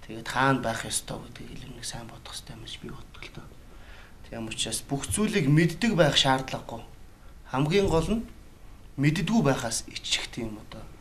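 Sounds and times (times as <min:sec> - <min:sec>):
man whispering softly: 0:00.0 - 0:04.4
man speaking loudly: 0:04.3 - 0:06.8, 0:07.5 - 0:08.3.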